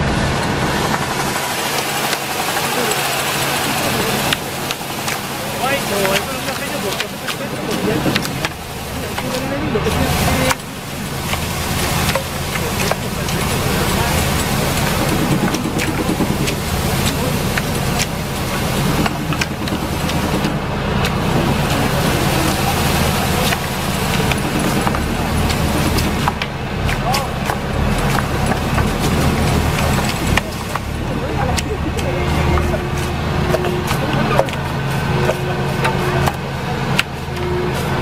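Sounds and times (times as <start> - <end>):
tractor engine running: 0.0 - 38.0
poles clacking on branches: 0.9 - 38.0.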